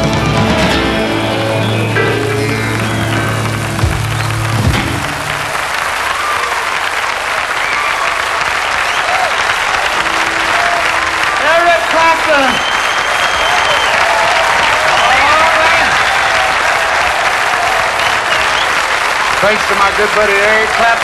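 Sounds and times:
rockabilly band final chord: 0:00.0 - 0:06.0, 0:09.6 - 0:13.4
audience applauding: 0:00.0 - 0:21.0.

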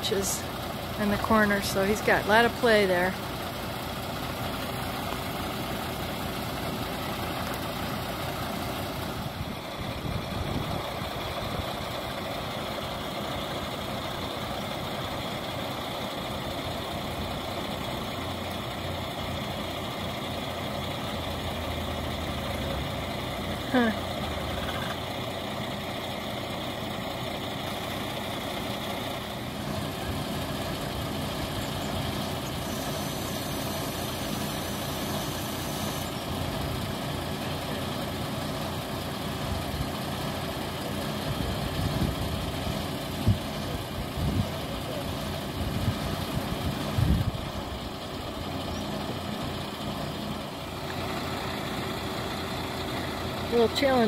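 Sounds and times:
heavy truck engine running: 0:00.0 - 0:54.0.

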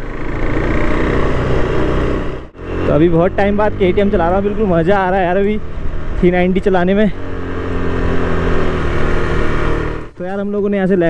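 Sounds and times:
motorcycle engine cruising: 0:00.0 - 0:10.4
wind and road noise: 0:00.0 - 0:11.0.

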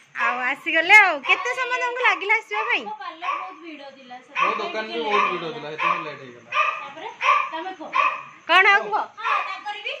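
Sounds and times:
dog barking: 0:01.2 - 0:03.6, 0:04.4 - 0:08.4, 0:09.2 - 0:09.6.

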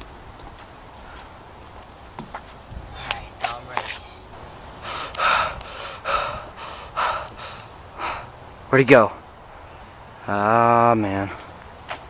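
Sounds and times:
boy breathing hard: 0:04.7 - 0:08.4.

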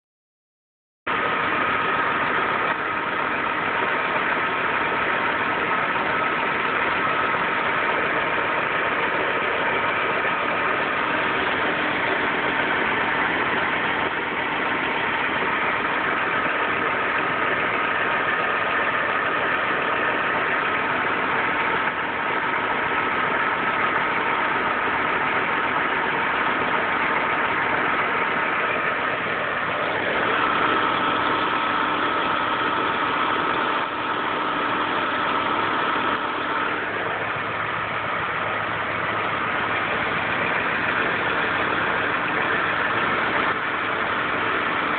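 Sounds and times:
car engine idling: 0:01.1 - 0:44.9.

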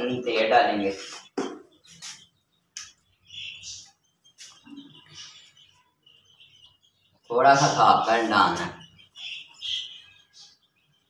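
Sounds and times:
chicks cheeping: 0:00.0 - 0:11.0.

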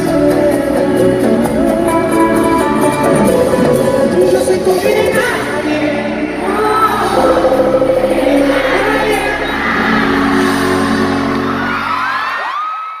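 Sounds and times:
man singing: 0:00.0 - 0:11.1
live latin song over loudspeakers: 0:00.0 - 0:13.0
crowd whooping: 0:09.4 - 0:13.0.

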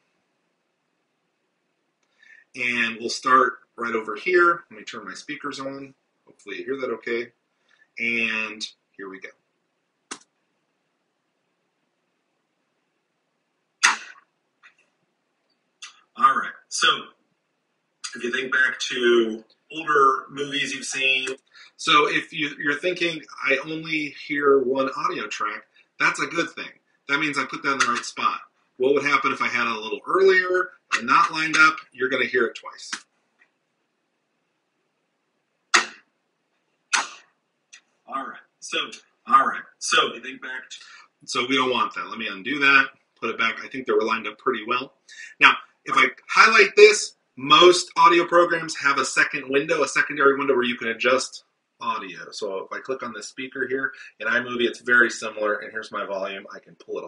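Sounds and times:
clapboard clap: 0:13.8 - 0:14.2, 0:27.8 - 0:28.1, 0:35.7 - 0:36.0, 0:36.9 - 0:37.2.

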